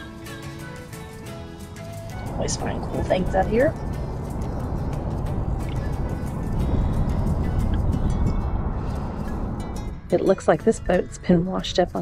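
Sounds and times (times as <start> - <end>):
background music: 0.0 - 12.0
wind rumbling on microphone: 2.1 - 12.0.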